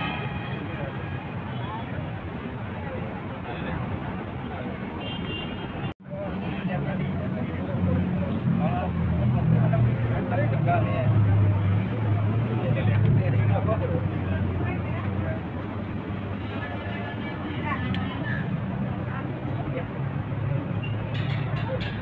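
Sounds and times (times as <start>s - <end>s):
people talking: 0.0s - 5.2s, 6.0s - 15.8s, 16.4s - 22.0s
heavy traffic engine hum: 0.0s - 22.0s.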